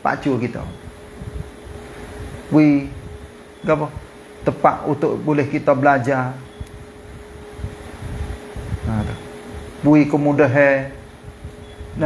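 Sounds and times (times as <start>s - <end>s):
man speaking: 0.0s - 0.8s, 3.6s - 6.5s, 8.8s - 9.2s, 9.8s - 11.0s
low room hum: 0.0s - 12.0s
faint steady tone: 2.8s - 7.6s, 11.1s - 12.0s.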